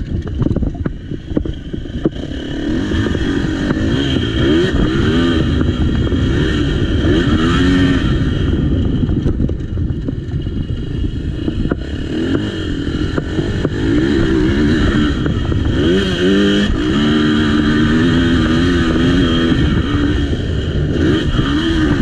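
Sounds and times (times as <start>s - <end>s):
dirt bike engine revving: 0.0s - 22.0s.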